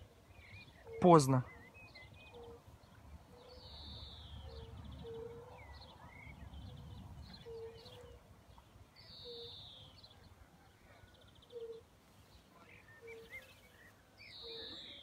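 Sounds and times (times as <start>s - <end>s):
birdsong: 0.0s - 15.0s.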